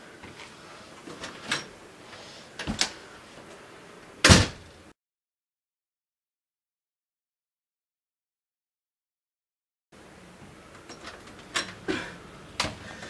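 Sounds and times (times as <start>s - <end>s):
door closing with loud bang: 4.2s - 4.7s.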